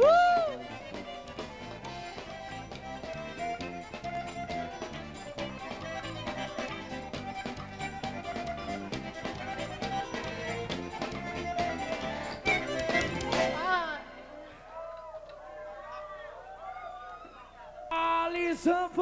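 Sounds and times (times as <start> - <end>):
drums beating: 0.0 - 14.0
accordion: 0.0 - 14.6.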